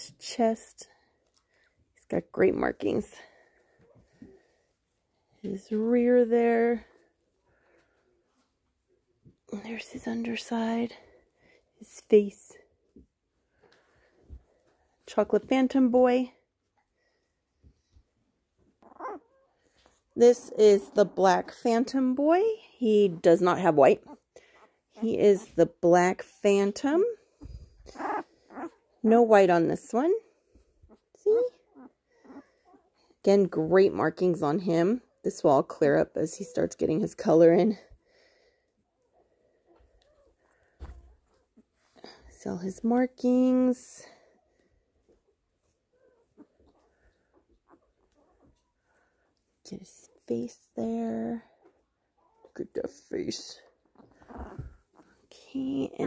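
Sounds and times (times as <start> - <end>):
puppy whimpering: 18.8 - 19.6, 27.8 - 28.9, 30.9 - 33.0, 45.6 - 48.9, 51.6 - 52.6, 53.9 - 55.2.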